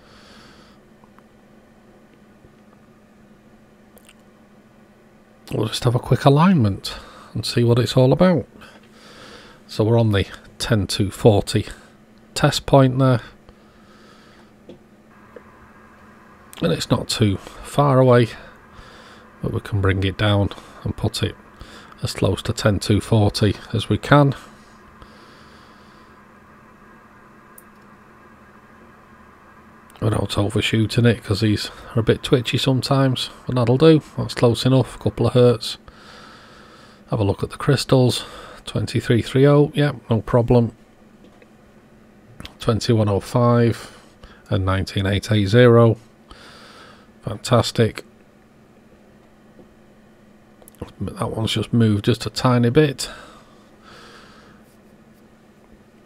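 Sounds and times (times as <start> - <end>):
steady low hiss: 0.0 - 56.0
steady low hum: 0.0 - 56.0.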